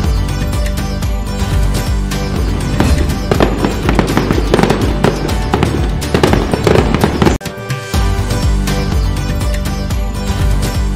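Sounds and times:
festive music: 0:00.0 - 0:10.9
fireworks banging and crackling: 0:02.3 - 0:07.4.

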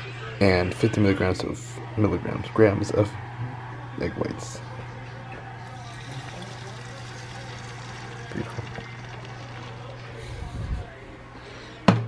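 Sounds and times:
egg whites trickling into pan: 0:05.7 - 0:10.2.

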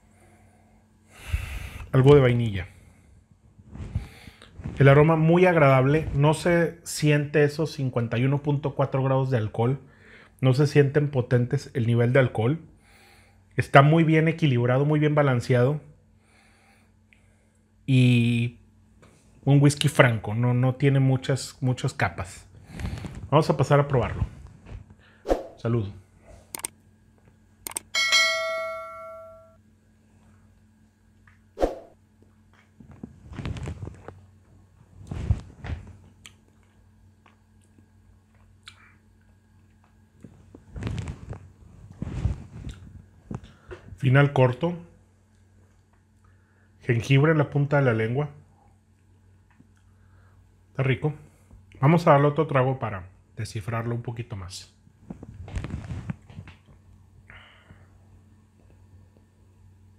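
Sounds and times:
glasses clinking and ringing: 0:28.0 - 0:29.6.

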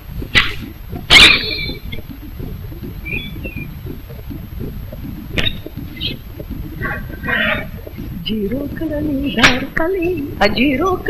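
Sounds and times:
low steady rumble: 0:00.0 - 0:11.0
bird chirps: 0:01.1 - 0:02.0, 0:02.9 - 0:03.8, 0:05.3 - 0:06.2.

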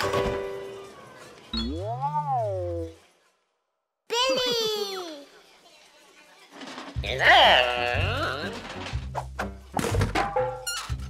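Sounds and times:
cartoon wordless vocal sound: 0:07.0 - 0:08.6.

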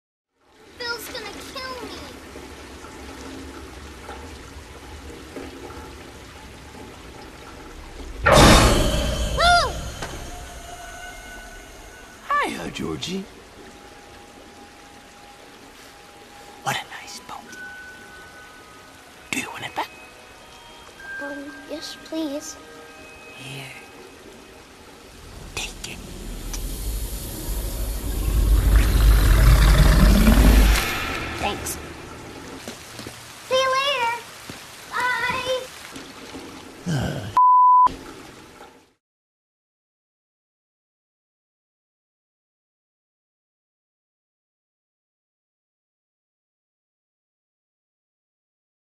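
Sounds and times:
rain hissing: 0:00.4 - 0:39.0
water rushing along gutter: 0:00.4 - 0:39.0
deep rumbling drone: 0:03.6 - 0:12.3, 0:25.0 - 0:32.6
sudden loud noise surge: 0:25.5 - 0:32.4.

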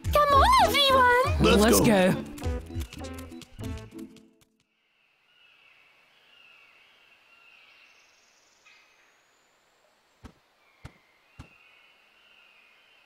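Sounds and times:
music: 0:00.0 - 0:04.6
faint forest ambience: 0:04.6 - 0:13.0
small birds chirping: 0:04.8 - 0:13.0.

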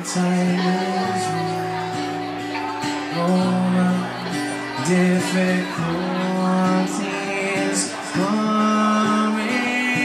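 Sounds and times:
electric guitar: 0:00.0 - 0:10.0
strummed acoustic guitar: 0:00.0 - 0:10.0.

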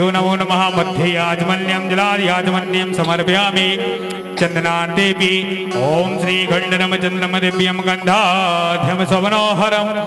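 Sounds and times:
person singing mantra: 0:00.2 - 0:09.5
steady drone: 0:00.8 - 0:08.5.

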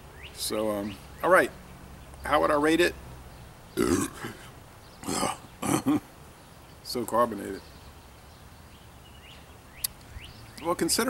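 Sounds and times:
man burping: 0:03.8 - 0:06.1.

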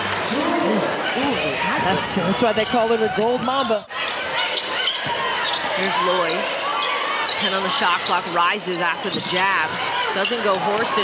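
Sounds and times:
arena noise: 0:00.0 - 0:11.0.

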